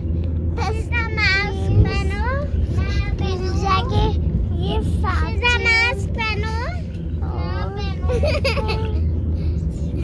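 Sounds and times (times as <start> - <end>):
train rumble: 0.0 - 10.0.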